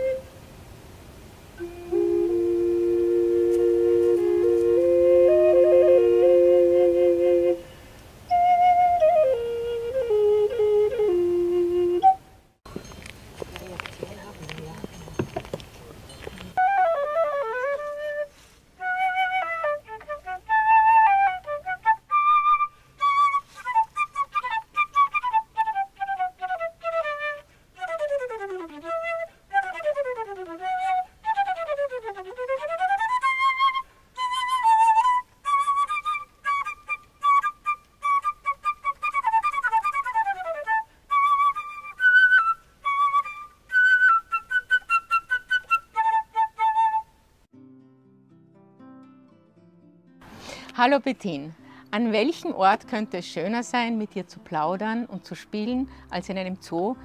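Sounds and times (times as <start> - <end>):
flute playing lively melody: 0.0 - 0.3, 1.6 - 12.4, 16.5 - 47.2.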